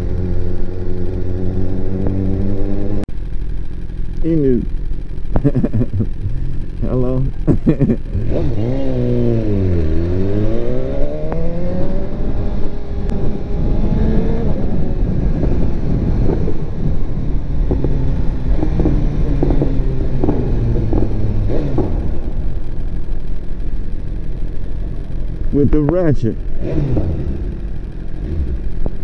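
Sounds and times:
motorcycle engine accelerating: 0.0s - 29.0s.

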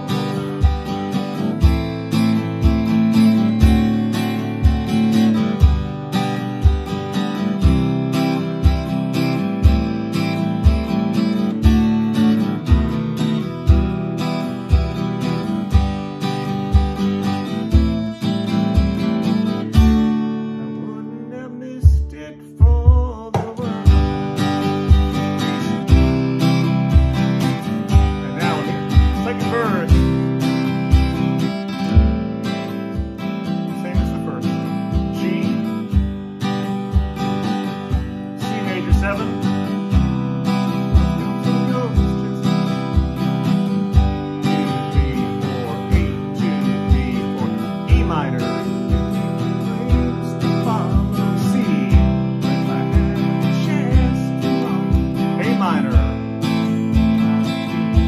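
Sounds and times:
acoustic guitar strummed: 0.0s - 58.0s
stomp box bass thump: 21.8s - 24.2s, 31.9s - 32.4s.

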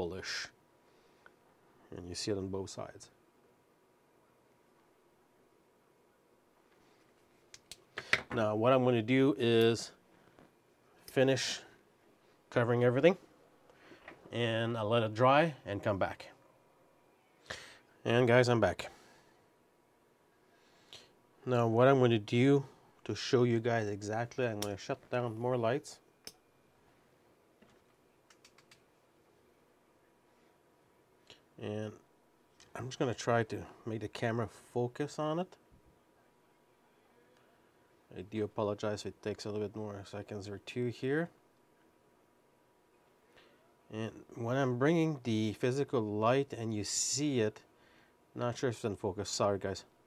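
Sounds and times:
sharp clicks: 28.3s - 28.8s.

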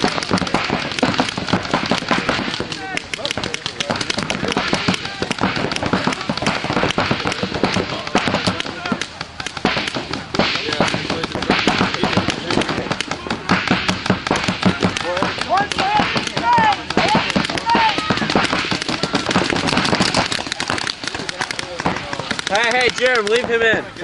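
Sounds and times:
paintball markers firing: 0.0s - 24.0s
players shouting: 0.0s - 24.0s.

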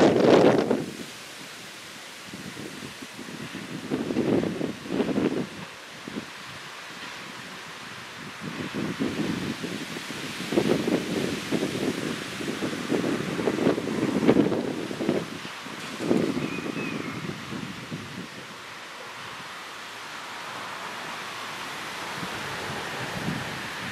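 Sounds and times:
wind buffeting microphone: 0.0s - 1.6s, 2.2s - 18.6s, 21.8s - 23.9s
steady outdoor hiss: 0.0s - 23.9s.

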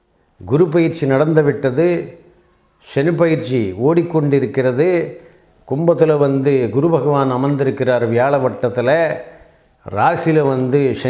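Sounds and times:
man speaking: 0.4s - 11.0s.

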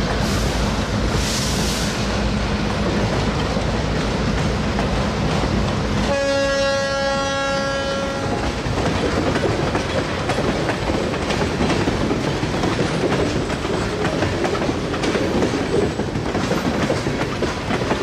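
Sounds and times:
train wheels clicking and rumbling: 0.0s - 18.0s
locomotive horn: 6.0s - 8.6s.

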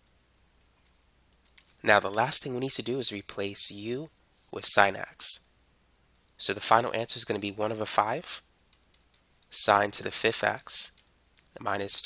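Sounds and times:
man speaking: 1.8s - 5.5s, 6.4s - 8.5s, 9.5s - 11.0s, 11.6s - 12.0s.

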